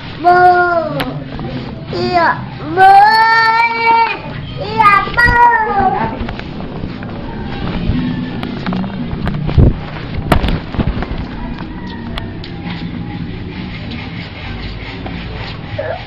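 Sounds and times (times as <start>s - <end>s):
microphone handling noise: 5.0s - 12.2s.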